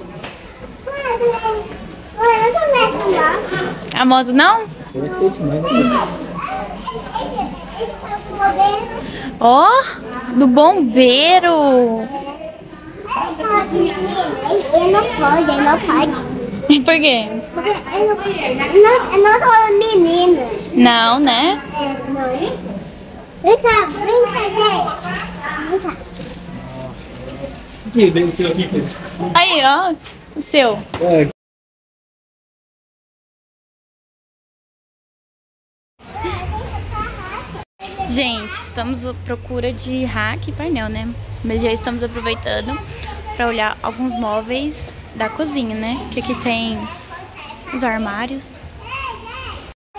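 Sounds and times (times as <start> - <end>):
toddler talking: 0.5 - 3.8, 5.0 - 10.1, 12.0 - 16.4, 17.6 - 20.8, 21.6 - 22.6, 23.4 - 26.1, 36.1 - 39.0, 41.5 - 49.7.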